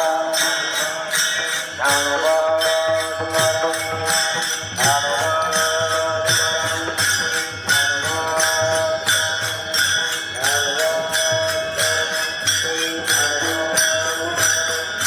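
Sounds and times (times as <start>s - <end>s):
hand cymbals clashing: 0.0s - 15.0s
men chanting a refrain: 0.0s - 15.0s.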